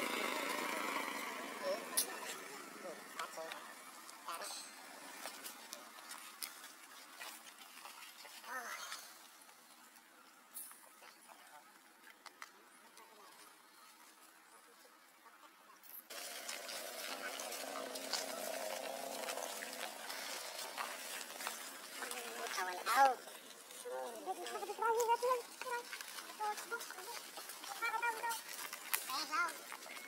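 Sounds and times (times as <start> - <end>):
outdoor background noise: 0.0 - 30.0.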